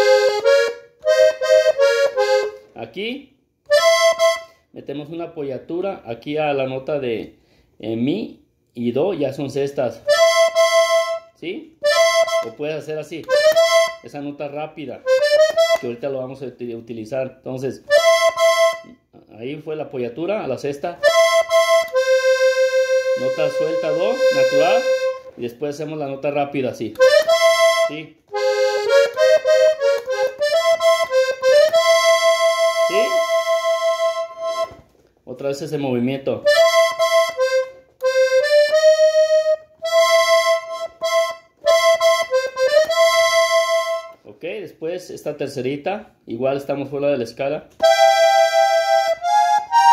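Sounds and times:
piano accordion notes: 0:00.0 - 0:02.7, 0:03.6 - 0:04.7, 0:10.0 - 0:14.2, 0:15.0 - 0:16.0, 0:17.8 - 0:19.0, 0:21.0 - 0:25.4, 0:27.0 - 0:34.9, 0:36.4 - 0:44.2, 0:47.8 - 0:49.9.

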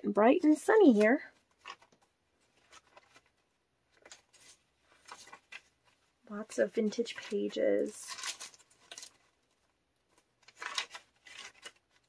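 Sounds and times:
paper pages turning: 0:00.3 - 0:12.0.

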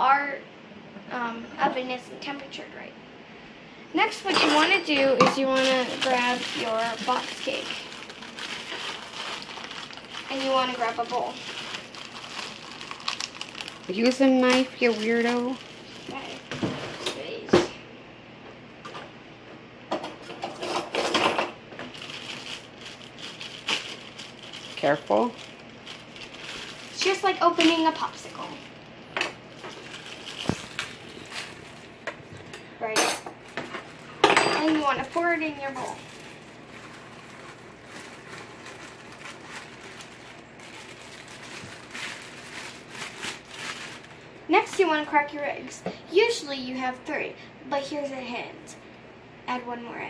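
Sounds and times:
plastic bag crinkling: 0:04.0 - 0:17.3, 0:21.8 - 0:32.5, 0:33.4 - 0:45.0.

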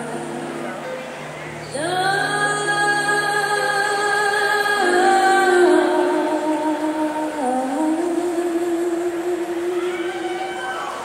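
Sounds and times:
woman singing sustained notes: 0:00.0 - 0:11.0.

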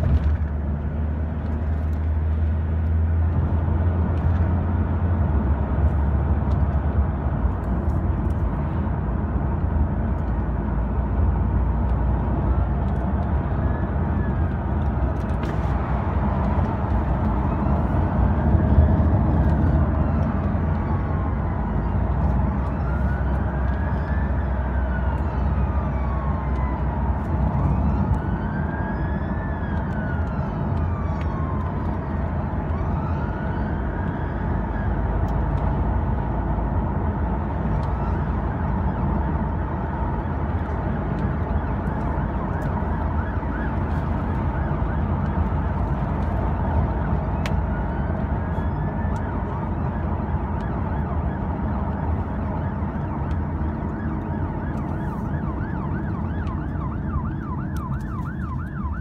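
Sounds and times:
car road and engine rumble: 0:00.0 - 0:59.0
fire engine siren wailing: 0:01.0 - 0:59.0.

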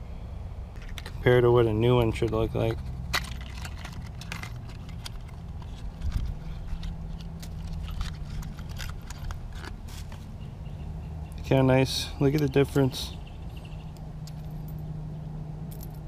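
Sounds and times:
steady low hum: 0:00.0 - 0:16.0
cardboard box crinkling and clicking: 0:02.7 - 0:10.2.

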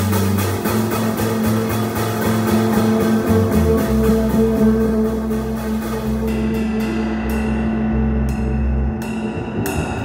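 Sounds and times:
cymbal strokes: 0:00.0 - 0:10.0
piano bass and drums playing: 0:00.0 - 0:10.0
plucked bass notes: 0:00.0 - 0:10.0.

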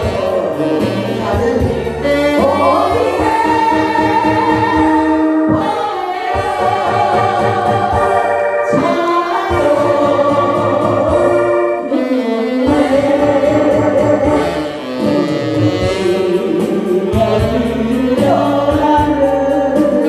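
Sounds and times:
backing track with steady beat: 0:00.0 - 0:20.0
group singing pop song: 0:00.0 - 0:20.0.

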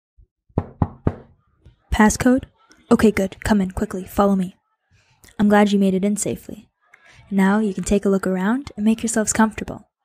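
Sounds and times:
knocks on a door: 0:00.6 - 0:01.3.

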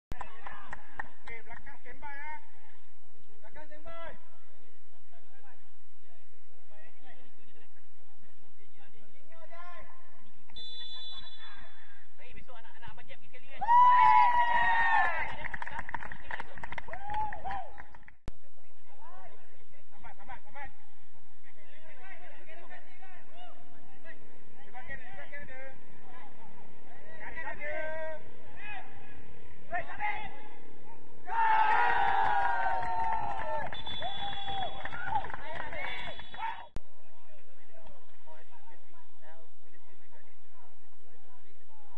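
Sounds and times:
referee's whistle blast: 0:10.6 - 0:11.5, 0:33.7 - 0:34.9
men shouting and calling out: 0:24.8 - 0:36.7.

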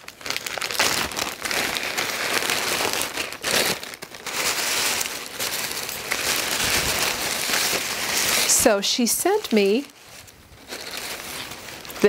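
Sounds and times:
packaging crinkling: 0:00.0 - 0:12.0.

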